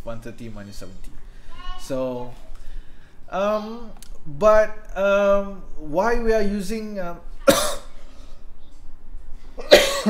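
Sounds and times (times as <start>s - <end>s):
man coughing: 7.5s - 7.8s, 9.6s - 10.0s.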